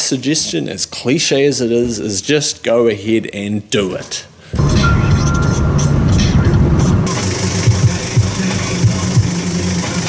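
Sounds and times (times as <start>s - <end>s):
car engine and road noise: 4.6s - 8.8s.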